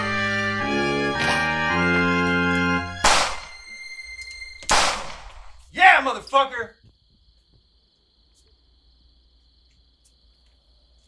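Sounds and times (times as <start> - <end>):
revolver gunshots: 3.0 - 3.6, 4.7 - 5.5.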